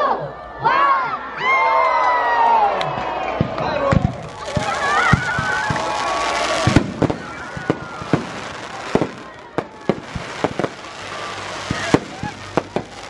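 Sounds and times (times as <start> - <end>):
fireworks bangs and crackling: 3.3 - 13.0.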